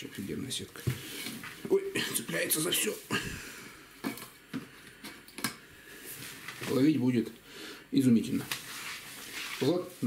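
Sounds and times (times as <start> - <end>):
nylon net rustling: 8.6 - 10.0.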